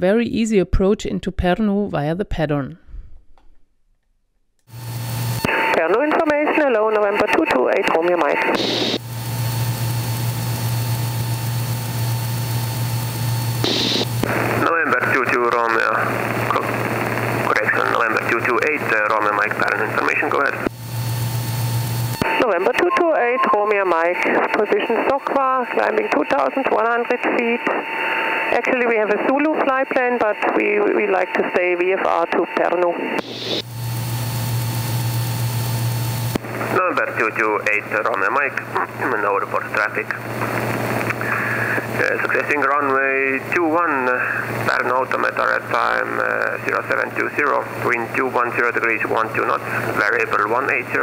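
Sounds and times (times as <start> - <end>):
aircraft engine drone: 8.3 - 25.0, 27.4 - 29.1, 33.2 - 45.4, 49.0 - 51.0.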